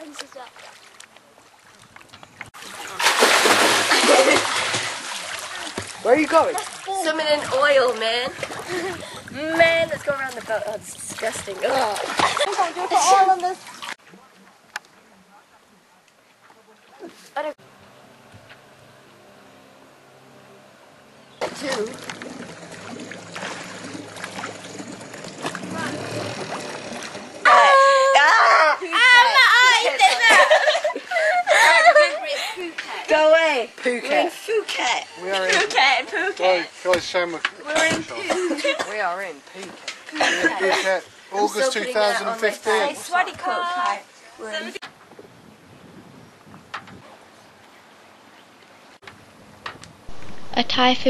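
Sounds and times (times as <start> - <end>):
swimmers splashing in water: 0.0 - 14.3, 21.4 - 31.8
outboard motor idling: 20.0 - 28.1.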